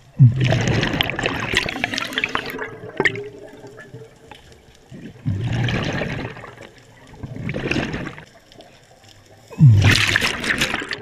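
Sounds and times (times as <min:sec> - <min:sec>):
exhaled bubbles underwater: 0:00.0 - 0:08.7, 0:09.3 - 0:11.0.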